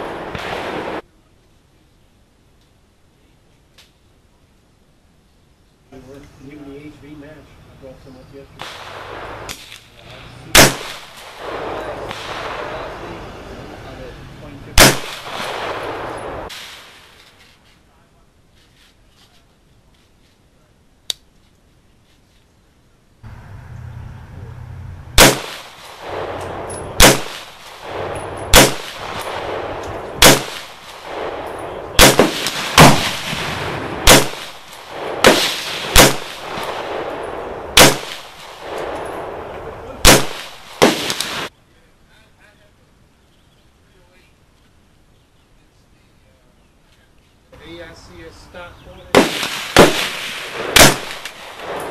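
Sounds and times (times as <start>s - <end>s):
pistol shots: 8.6s - 13.1s, 14.8s - 17.2s, 25.2s - 41.5s, 49.1s - 51.9s.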